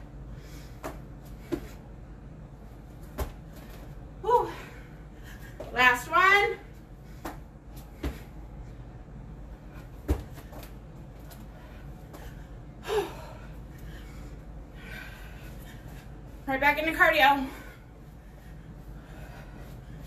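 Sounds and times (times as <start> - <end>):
feet thudding on carpet: 7.1 - 8.3, 10.0 - 10.7.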